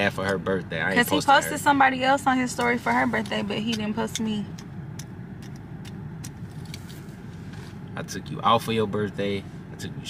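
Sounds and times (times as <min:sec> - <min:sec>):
car engine rumble inside cabin: 0:00.0 - 0:10.0.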